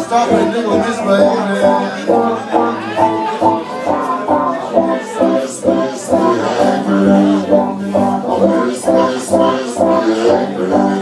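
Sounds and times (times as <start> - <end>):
drums: 0.0 - 11.0
electric guitar notes: 0.0 - 11.0.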